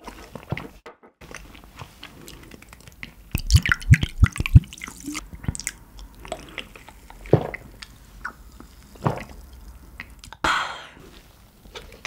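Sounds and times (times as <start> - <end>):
chewing with wet clicks: 1.3 - 10.4.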